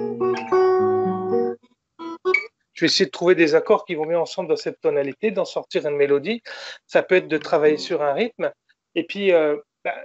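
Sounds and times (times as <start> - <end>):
acoustic guitar chords: 0.0 - 2.5.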